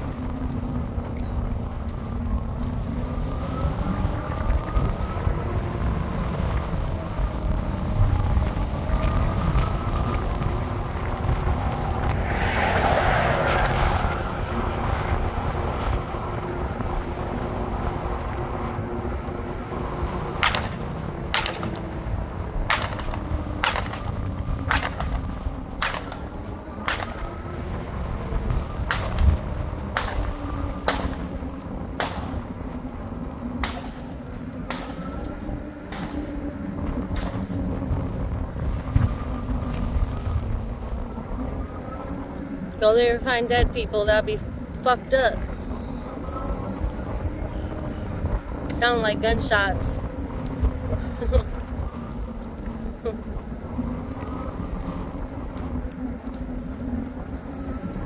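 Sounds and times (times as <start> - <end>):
road noise: 0.0 - 58.0
wavering motor whine: 0.0 - 58.0
wind rumble on microphone: 0.0 - 58.0
rushing swell: 10.6 - 16.4
sharp irregular clicks: 18.9 - 27.6.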